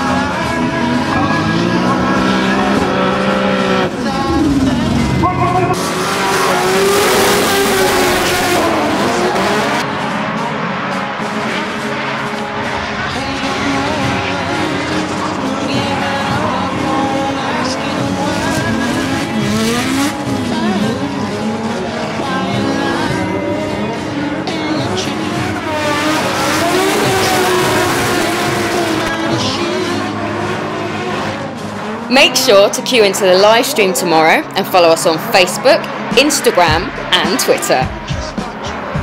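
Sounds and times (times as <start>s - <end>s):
background music: 0.0s - 39.0s
car engines revving: 0.0s - 39.0s.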